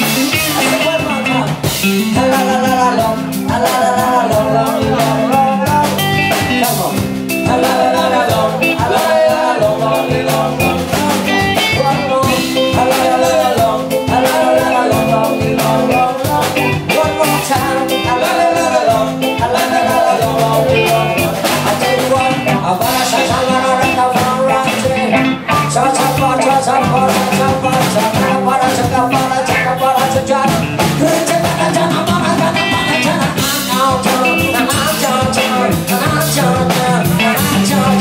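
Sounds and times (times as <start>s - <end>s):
drum kit beat: 0.0s - 38.0s
electric guitars: 0.0s - 38.0s
live reggae band: 0.0s - 38.0s.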